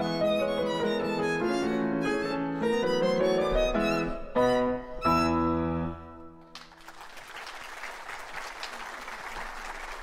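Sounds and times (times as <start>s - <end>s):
piano and violin chords: 0.0s - 6.5s.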